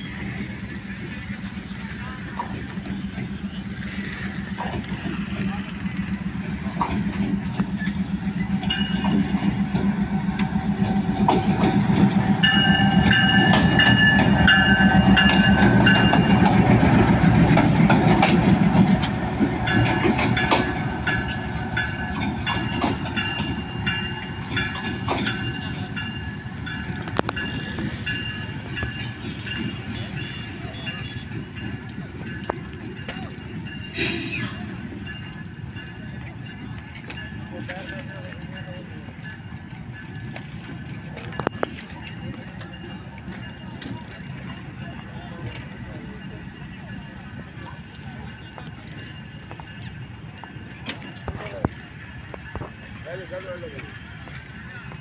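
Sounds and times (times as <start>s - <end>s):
locomotive engine rumble: 0.0s - 55.0s
wheels clacking over rail joints: 0.1s - 55.0s.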